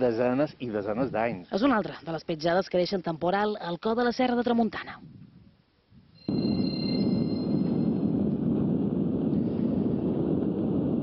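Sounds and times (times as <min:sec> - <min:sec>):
faint high whine: 0:06.1 - 0:08.8.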